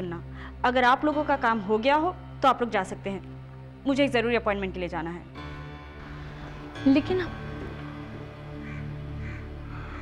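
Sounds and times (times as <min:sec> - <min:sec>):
dramatic background music: 0:00.0 - 0:10.0
crow cawing: 0:08.1 - 0:10.0.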